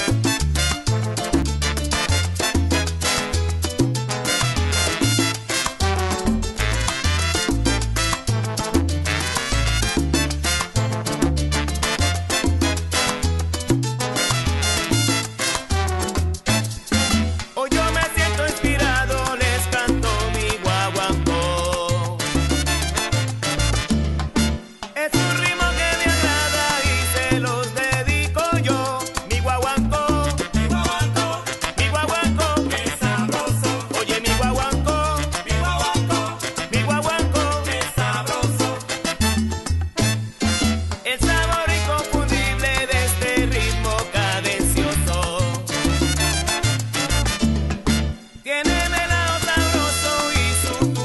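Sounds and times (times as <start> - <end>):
salsa bass line: 0.0 - 51.0.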